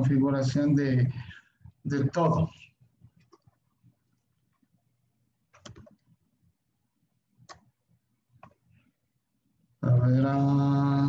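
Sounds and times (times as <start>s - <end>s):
man speaking: 0.0s - 2.8s.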